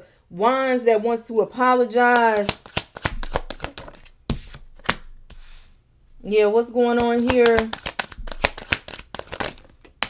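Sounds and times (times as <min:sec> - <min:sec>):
cards being shuffled: 0:02.4 - 0:05.7, 0:06.9 - 0:10.0.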